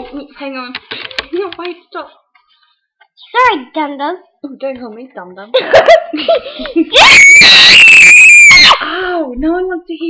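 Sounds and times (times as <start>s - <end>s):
child screaming: 7.0s - 8.8s.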